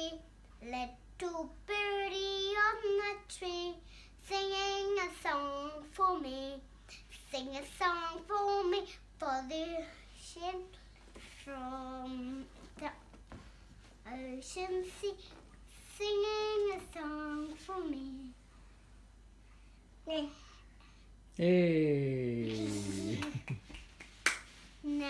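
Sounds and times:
child's voice: 0.0s - 10.8s, 14.0s - 18.4s, 20.0s - 20.6s, 22.4s - 23.4s
girl singing: 0.0s - 10.8s, 11.4s - 13.0s, 14.0s - 18.4s.

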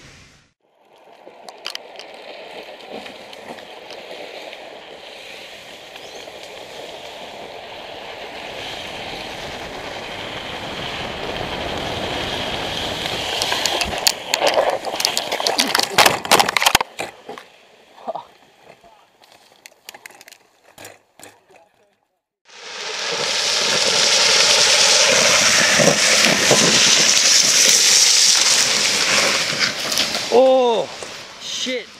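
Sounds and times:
wheels rolling on wet asphalt: 0.2s - 21.8s, 22.4s - 31.9s
wind rushing: 4.6s - 15.1s, 22.6s - 31.4s.

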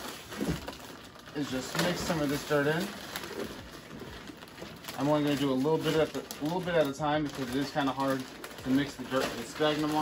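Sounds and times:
bag rustling: 0.0s - 10.0s.

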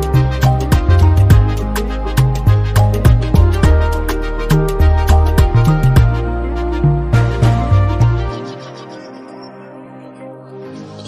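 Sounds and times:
deep bass line: 0.0s - 8.4s
afrobeat instrumental music: 0.0s - 9.0s
steady drum beat: 2.2s - 3.9s.

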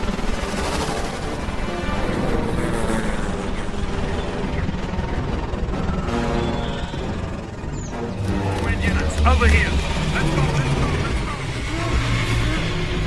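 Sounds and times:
dramatic film score: 0.0s - 13.0s.

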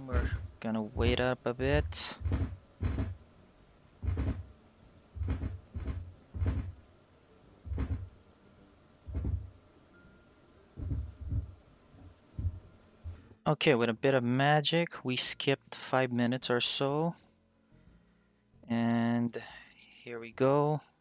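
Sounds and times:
fingertips drumming on cloth table: 1.0s - 3.2s, 4.0s - 4.5s, 5.2s - 6.8s, 7.7s - 8.1s, 9.1s - 9.5s, 10.8s - 11.6s, 12.4s - 12.7s.

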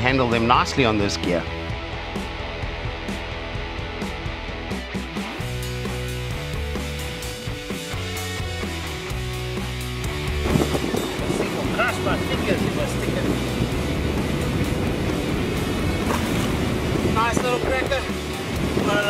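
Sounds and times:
background music: 0.0s - 19.0s
surf rushing: 8.8s - 19.0s
sea water churning in rock pool: 15.7s - 19.0s.

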